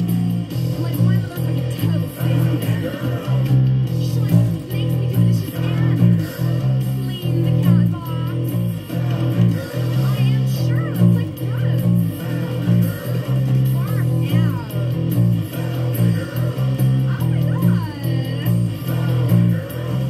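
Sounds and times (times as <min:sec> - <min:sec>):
band recording with guitar and voice: 0:00.0 - 0:20.0
electric bass bassline: 0:00.0 - 0:20.0.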